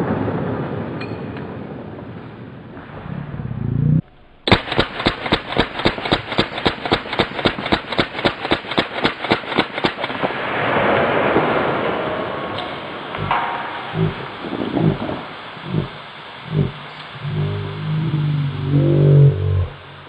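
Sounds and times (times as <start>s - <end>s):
rushing noise: 2.3s - 20.0s
submachine gun rapid fire: 4.5s - 10.3s.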